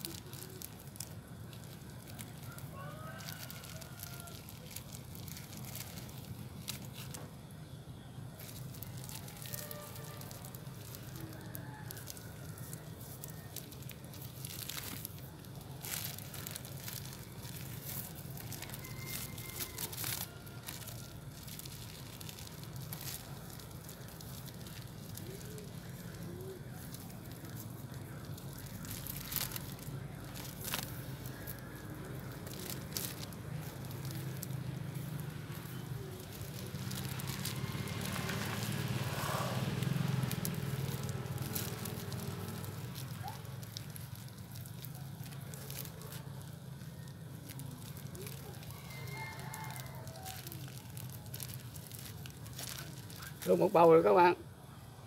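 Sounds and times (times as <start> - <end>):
plastic bag crinkling: 0.0 - 54.6.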